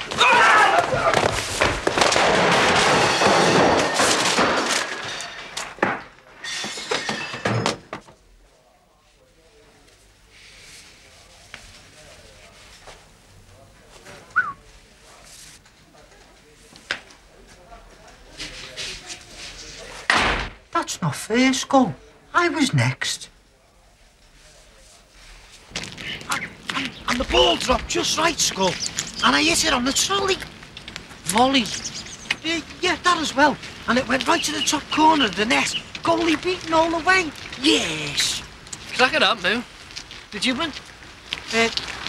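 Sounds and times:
people crashing to the floor: 0:00.0 - 0:08.2
door slamming shut: 0:20.1 - 0:20.6.

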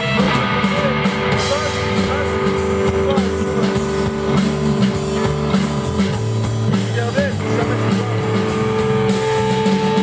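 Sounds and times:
bass guitar: 0:00.0 - 0:10.0
drum kit: 0:00.0 - 0:10.0
electric guitar: 0:00.0 - 0:10.0.

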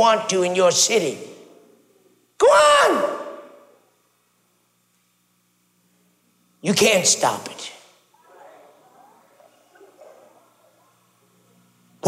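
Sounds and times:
faint low hum: 0:00.0 - 0:12.0
man shouting: 0:02.4 - 0:03.7.

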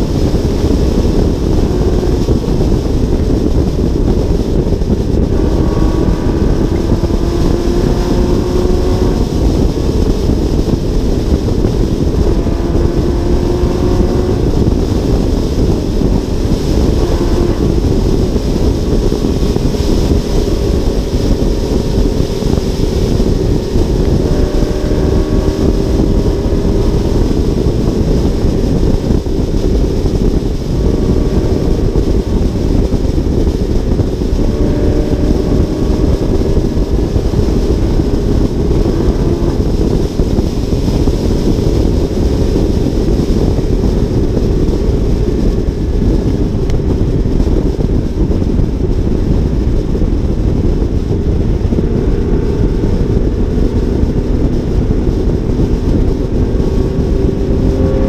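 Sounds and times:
faint engine drone: 0:00.0 - 0:58.0
wind rush: 0:00.0 - 0:58.0.

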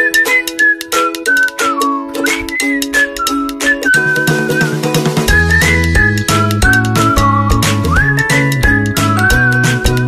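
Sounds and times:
light percussion beat: 0:00.0 - 0:10.0
plucked-string chords: 0:00.0 - 0:10.0
whistled melody: 0:00.0 - 0:10.0.

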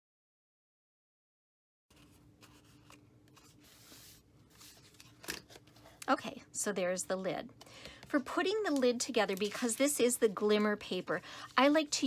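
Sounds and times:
paper being handled: 0:08.1 - 0:12.0.

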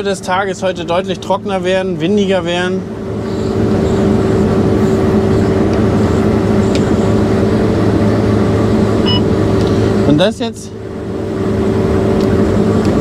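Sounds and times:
combine harvester drone: 0:00.0 - 0:13.0.

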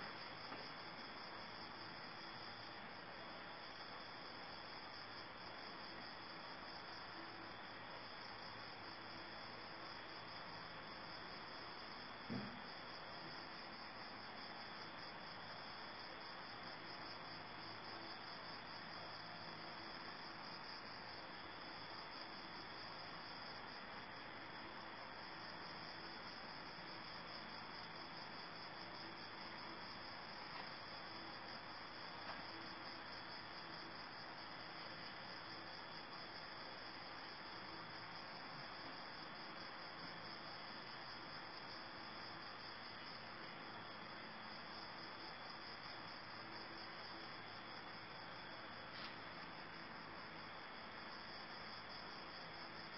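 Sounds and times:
crickets chirping: 0:00.0 - 0:52.9.

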